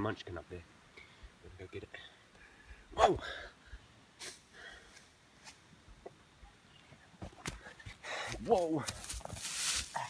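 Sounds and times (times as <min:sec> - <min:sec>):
faint breathing: 0:00.9 - 0:05.1, 0:07.6 - 0:08.4
scuffing on sand: 0:08.3 - 0:10.0.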